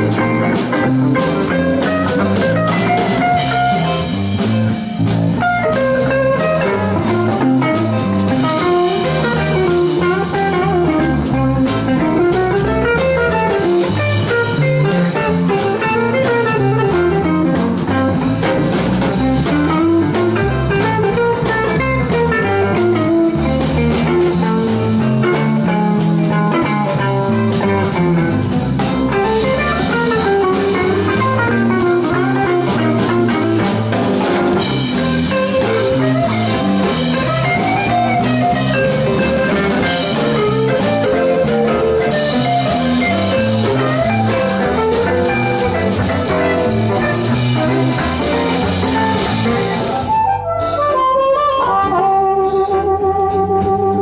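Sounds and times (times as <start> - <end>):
blues band playing: 0.0 - 54.0.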